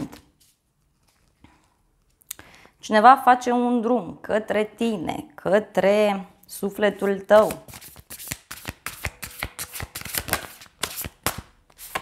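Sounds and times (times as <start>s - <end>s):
cards being shuffled by hand: 7.0s - 12.0s.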